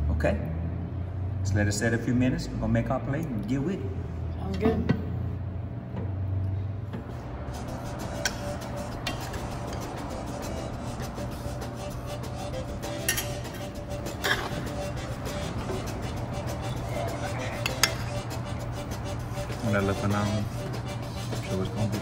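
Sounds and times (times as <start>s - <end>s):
background music: 7.3s - 22.0s
metal spoon clinking on pot: 13.0s - 13.4s, 17.6s - 18.1s.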